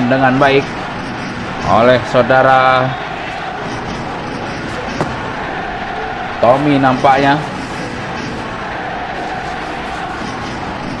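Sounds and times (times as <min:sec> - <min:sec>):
football ground background noise: 0:00.0 - 0:11.0.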